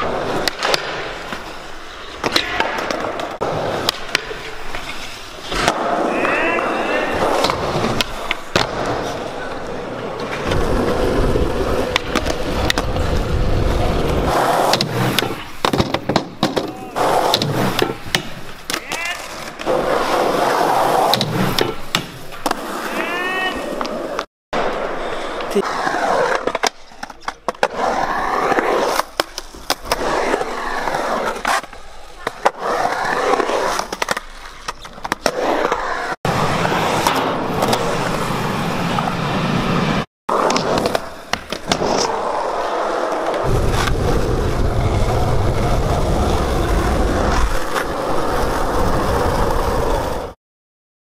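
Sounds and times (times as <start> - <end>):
skateboard wheels rolling on concrete: 0.0 - 50.4.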